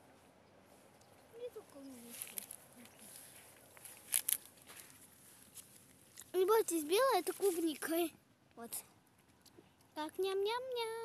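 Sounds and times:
sharp crackles: 0:01.7 - 0:08.1.

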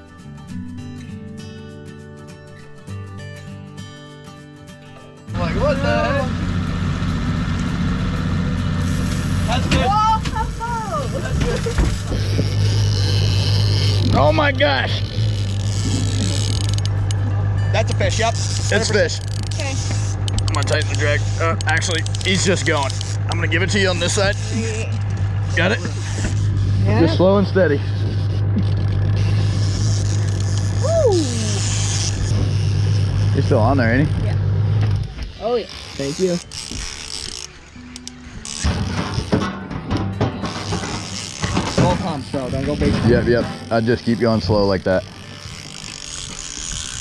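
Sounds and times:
outboard motor running: 0:05.3 - 0:47.0.

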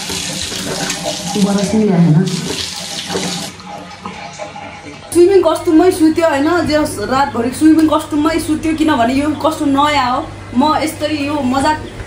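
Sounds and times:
water running from sink tap: 0:00.0 - 0:08.0.

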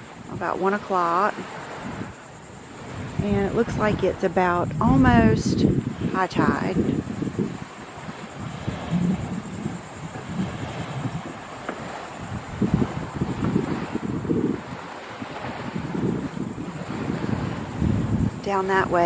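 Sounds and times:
steady wind hiss: 0:00.0 - 0:19.0
wind buffeting microphone: 0:00.0 - 0:19.0.

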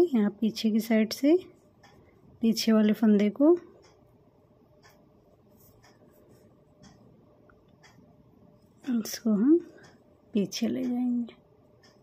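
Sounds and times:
faint yarn scratching: 0:05.5 - 0:06.6.

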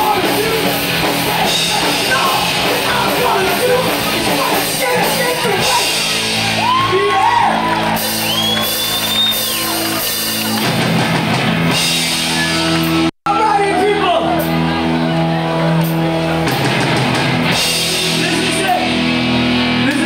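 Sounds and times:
vocalist shouting and singing: 0:00.0 - 0:07.6
punk band playing: 0:00.0 - 0:20.0.

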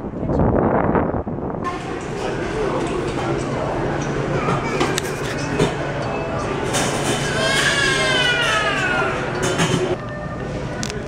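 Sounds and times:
street traffic rumble: 0:00.0 - 0:11.0
cafe murmur: 0:01.7 - 0:11.0.

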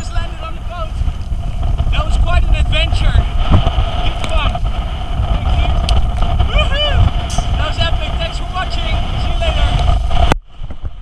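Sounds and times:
people talking: 0:00.0 - 0:01.0, 0:01.9 - 0:03.3, 0:04.0 - 0:04.6, 0:05.3 - 0:09.8
wind buffeting microphone: 0:00.0 - 0:11.0.

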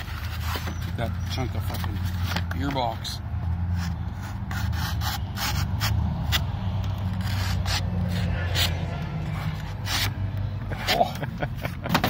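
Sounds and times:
blade slicing cardboard: 0:09.4 - 0:10.2.

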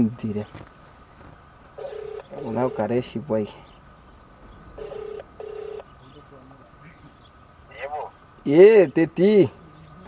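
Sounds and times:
phone ringback tone: 0:01.8 - 0:03.1, 0:04.8 - 0:05.8.

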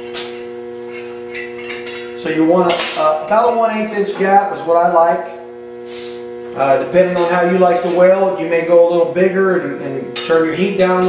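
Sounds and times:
steady hum of held tones: 0:00.0 - 0:11.0.

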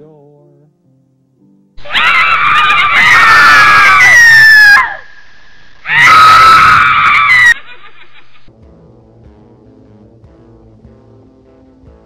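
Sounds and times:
loud harsh screams: 0:01.8 - 0:05.2, 0:05.8 - 0:07.9.

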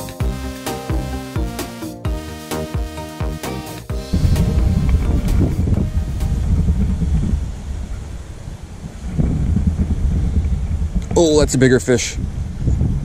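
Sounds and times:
wind buffeting microphone: 0:04.0 - 0:13.0.

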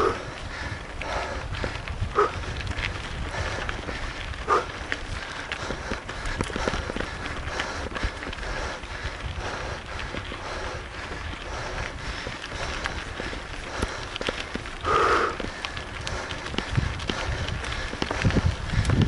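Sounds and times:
bike rattling over bumps: 0:00.0 - 0:19.0
tyres crunching on gravel: 0:00.0 - 0:19.0
wind rumble on microphone: 0:00.0 - 0:19.0.

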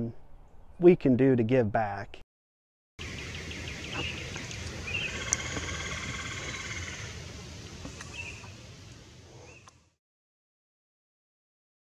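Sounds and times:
low outdoor rumble: 0:03.0 - 0:09.6
songbirds singing: 0:03.0 - 0:09.9.

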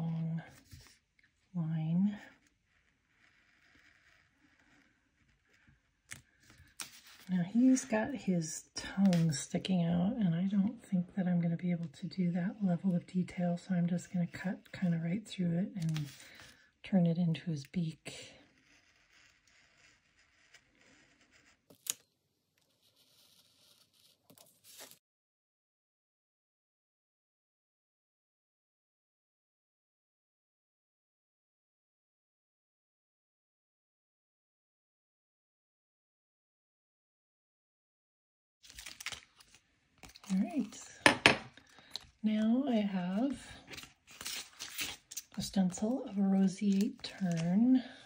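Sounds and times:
craft knife cutting paper: 0:02.4 - 0:07.8, 0:18.5 - 0:25.0, 0:43.1 - 0:48.0.

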